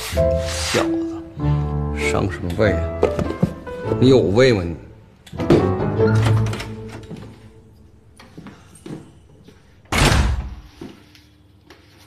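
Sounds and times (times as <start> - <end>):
metal door slamming: 9.9 - 10.6.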